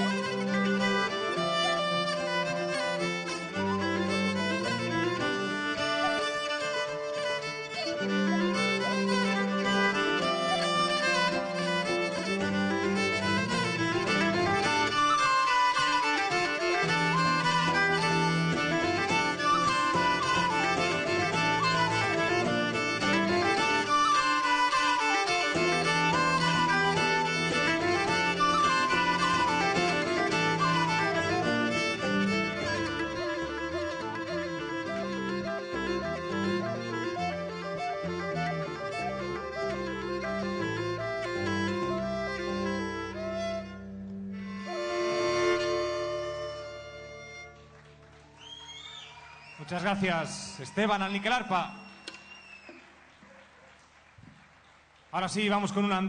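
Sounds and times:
acoustic guitar: 0:00.0 - 0:47.7
low accompaniment: 0:00.0 - 0:48.4
wooden flute melody: 0:00.0 - 0:53.2.

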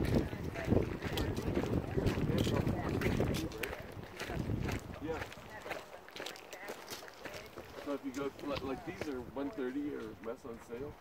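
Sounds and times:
footsteps on gravel: 0:00.0 - 0:10.9
people talking faintly: 0:00.0 - 0:11.0.

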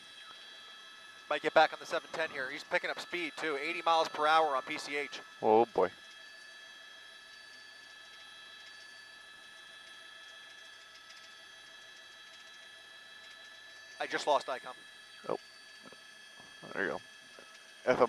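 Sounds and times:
steady high tones: 0:00.1 - 0:07.9, 0:13.8 - 0:18.0
intercom hiss and hum: 0:01.3 - 0:05.9, 0:14.0 - 0:16.0, 0:16.6 - 0:17.0.

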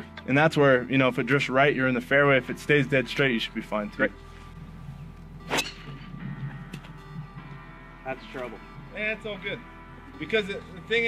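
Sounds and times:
faint background music: 0:00.0 - 0:11.0
golf club striking ball: 0:05.4 - 0:07.0.

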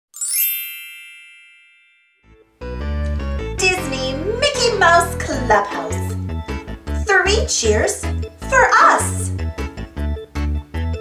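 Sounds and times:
bright chime ringing: 0:00.2 - 0:02.5.

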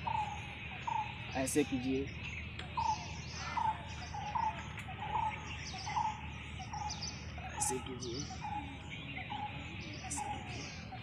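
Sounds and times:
high background chirping: 0:00.0 - 0:11.0.

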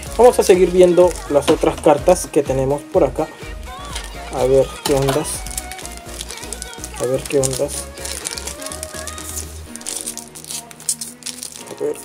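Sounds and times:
foil wrapper crinkling and tearing: 0:00.0 - 0:02.0, 0:03.8 - 0:12.0
background music with held tones: 0:00.0 - 0:12.0.

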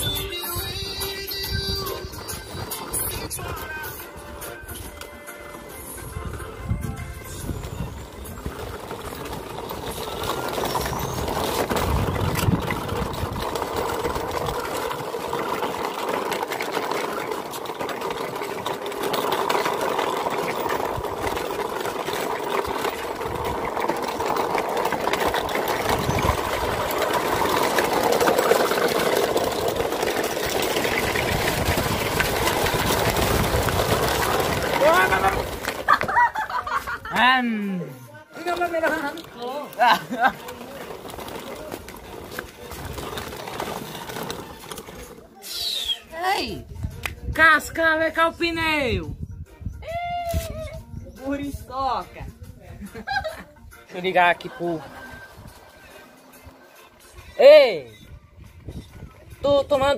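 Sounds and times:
background music: 0:00.0 - 0:11.4, 0:34.6 - 0:41.2, 0:46.1 - 0:59.9
toy truck motor whirring: 0:05.8 - 0:35.7, 0:40.0 - 0:46.0.

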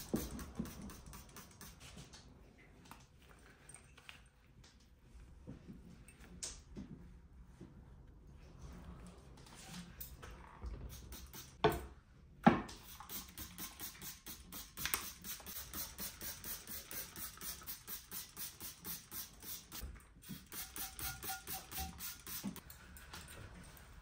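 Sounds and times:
spray bottle hissing: 0:00.0 - 0:01.8, 0:10.9 - 0:11.6, 0:12.8 - 0:22.6.

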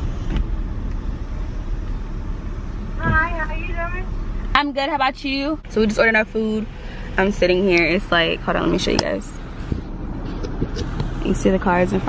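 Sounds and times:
car idling rumble: 0:00.0 - 0:12.0.

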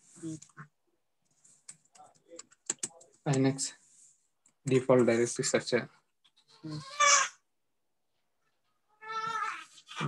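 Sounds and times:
high-pitched animal call: 0:06.5 - 0:07.4.

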